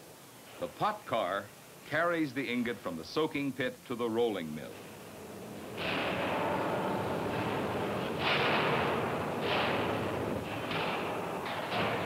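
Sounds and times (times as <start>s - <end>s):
heavy steel mill machinery rumbling: 0.5s - 12.0s.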